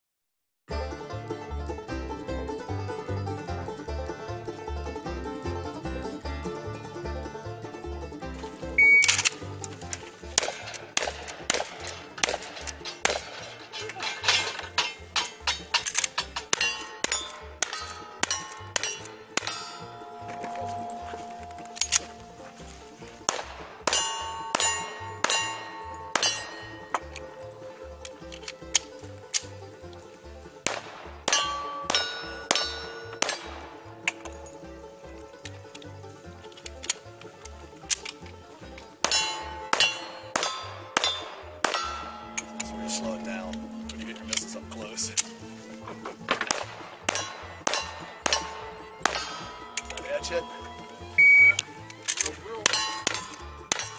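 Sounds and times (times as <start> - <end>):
bluegrass banjo music: 0.7 - 53.9
steel targets ringing: 10.3 - 27.8, 30.6 - 34.7, 39.0 - 51.8, 52.5 - 53.9
gunshots: 10.4 - 13.4, 23.3 - 25.4, 30.7 - 33.8, 46.4 - 49.4.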